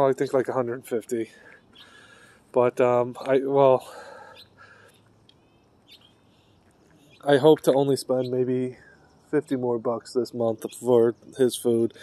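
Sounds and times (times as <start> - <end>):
faint bird chirps: 1.1 - 12.0.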